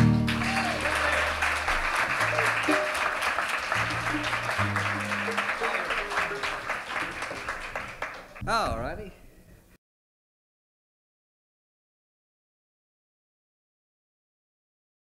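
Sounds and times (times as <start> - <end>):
acoustic guitars and upright bass chord: 0.0 - 0.4
audience applauding: 0.0 - 8.4.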